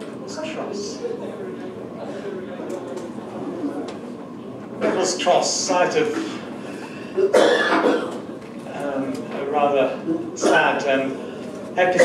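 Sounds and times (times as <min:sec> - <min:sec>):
person coughing: 0:07.2 - 0:08.2.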